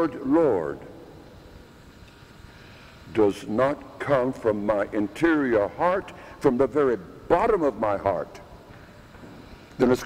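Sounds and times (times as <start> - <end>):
even hiss: 0.0 - 10.0.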